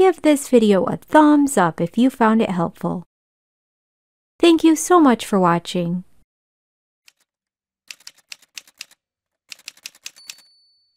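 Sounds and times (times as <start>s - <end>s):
rapid keyboard key clicks: 7.1s - 7.3s, 7.9s - 10.4s.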